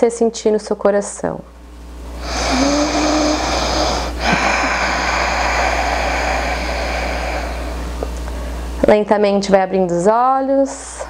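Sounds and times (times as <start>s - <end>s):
steady low hum: 0.0s - 11.0s
breathy exhale: 2.2s - 8.6s.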